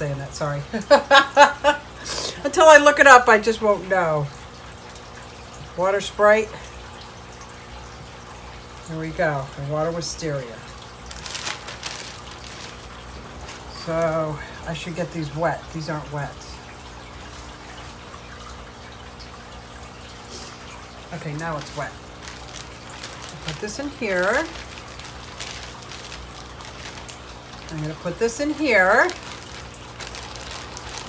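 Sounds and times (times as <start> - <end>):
plastic bag crinkling: 10.8 - 14.5, 21.1 - 31.0.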